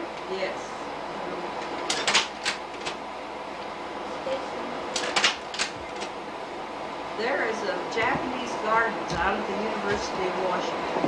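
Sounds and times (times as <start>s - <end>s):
steady low hiss: 0.0s - 11.0s
slide projector clicks and clunks: 1.6s - 3.0s, 4.9s - 6.2s.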